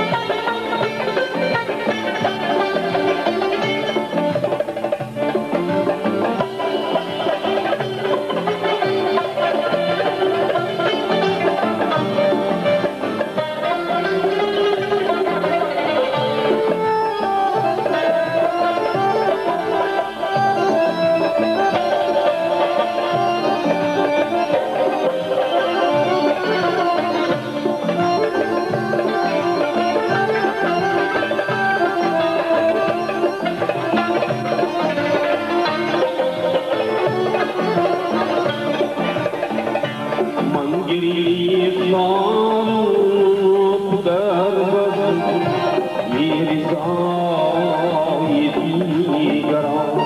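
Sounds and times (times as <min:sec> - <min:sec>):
accordion holding chords: 0:00.0 - 0:50.0
lute plucked quickly: 0:00.0 - 0:50.0.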